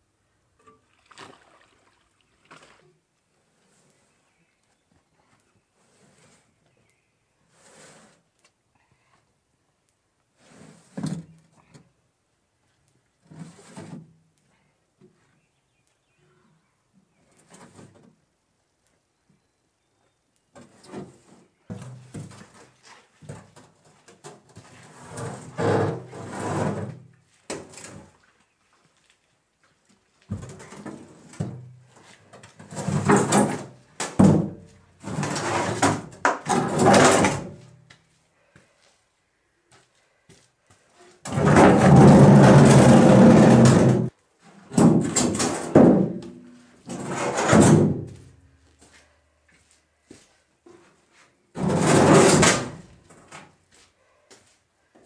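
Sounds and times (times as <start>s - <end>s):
bathtub scraping over ground: 7.5s - 8.2s, 13.2s - 14.1s, 20.6s - 28.3s, 30.4s - 37.6s, 41.2s - 46.2s, 46.8s - 48.3s, 51.5s - 53.4s.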